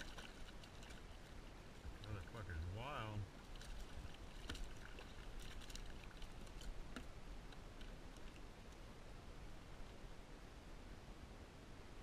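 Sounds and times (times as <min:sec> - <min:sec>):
fish splashing at surface: 0:00.0 - 0:01.2
man's wordless voice: 0:02.0 - 0:03.3.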